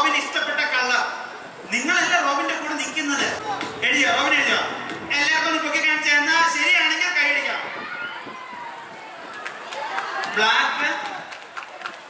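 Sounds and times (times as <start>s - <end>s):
faint voices: 1.2s - 11.9s.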